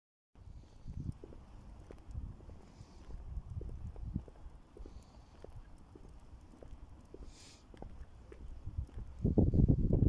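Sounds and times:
footsteps on tarmac: 0:00.4 - 0:10.0.

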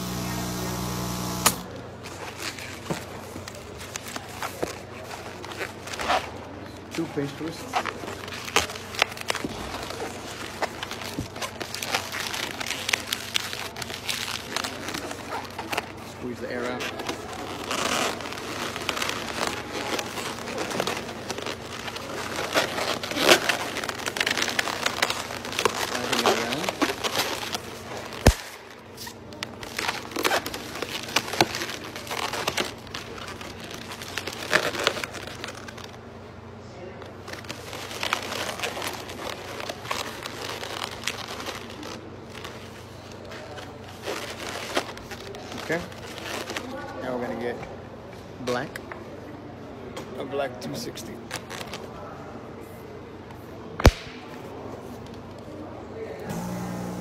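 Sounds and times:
balloon squeaking and rubbing: 0:16.7 - 0:35.9.

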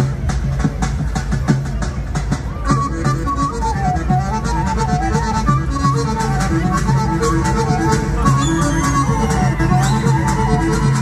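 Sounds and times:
amplified folk dance music: 0:00.0 - 0:11.0.

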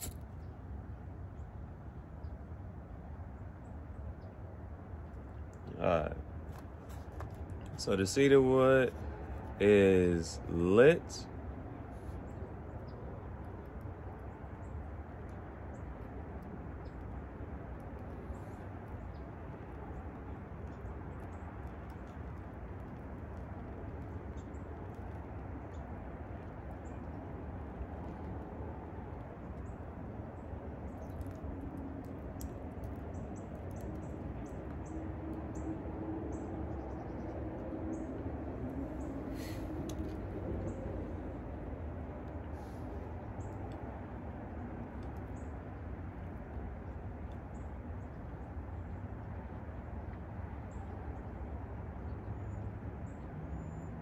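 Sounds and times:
outdoor background hum and hiss: 0:00.0 - 0:54.0
faint low drone: 0:05.1 - 0:54.0.

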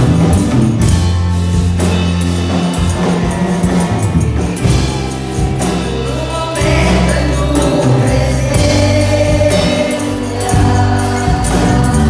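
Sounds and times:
keyboard and band accompaniment: 0:00.0 - 0:12.0
group singing gospel music: 0:01.8 - 0:12.0.

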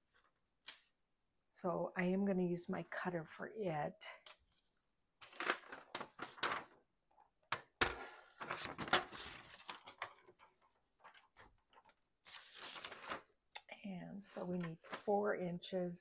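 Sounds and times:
paper rustling: 0:00.0 - 0:01.0, 0:04.6 - 0:06.8, 0:07.5 - 0:13.4, 0:14.4 - 0:15.2.

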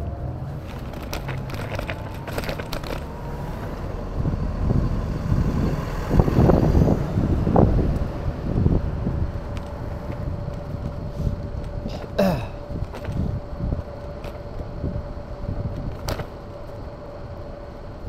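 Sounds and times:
street noise: 0:00.0 - 0:18.0
wind rumbling on microphone: 0:00.0 - 0:18.0.

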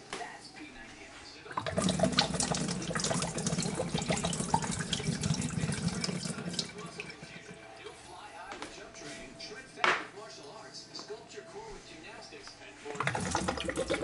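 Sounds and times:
tap water running into sink: 0:01.6 - 0:07.6, 0:12.9 - 0:14.0.

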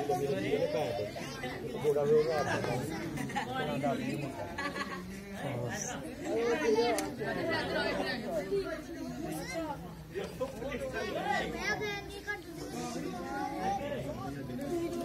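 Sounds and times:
overlapping chatter of voices: 0:00.0 - 0:15.0.

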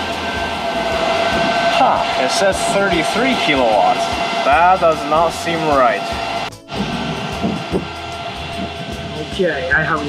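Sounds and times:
cooling fans: 0:00.0 - 0:10.0
electrical whine and hum: 0:00.0 - 0:10.0.

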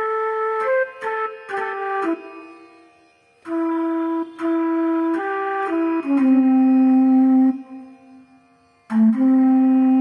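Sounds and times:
slow flute melody: 0:00.0 - 0:10.0.

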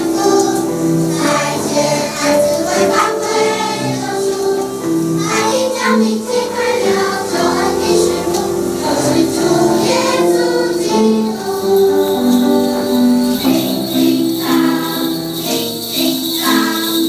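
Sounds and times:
children's choir singing: 0:00.0 - 0:17.0.

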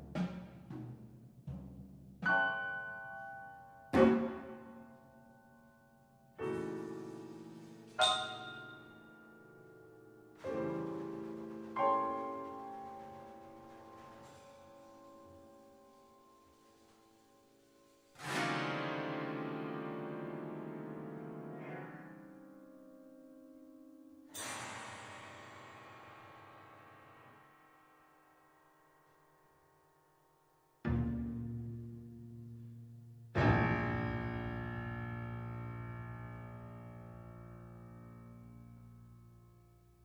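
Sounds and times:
piano and percussion strike: 0:00.0 - 0:20.3, 0:24.3 - 0:27.8, 0:30.9 - 0:39.8
ringing metal percussion strike: 0:07.9 - 0:09.2.

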